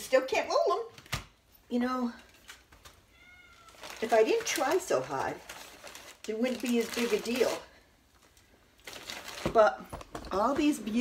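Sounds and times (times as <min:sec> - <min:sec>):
cat meowing: 0:03.1 - 0:04.0.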